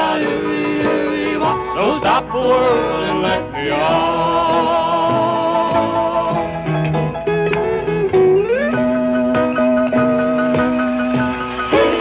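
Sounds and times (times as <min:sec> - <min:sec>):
guitar picking notes: 0:00.0 - 0:12.0.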